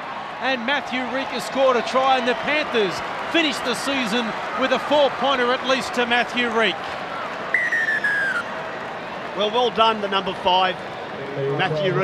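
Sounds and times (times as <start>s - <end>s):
stadium crowd noise: 0.0s - 12.0s
whistle blast: 7.6s - 8.5s.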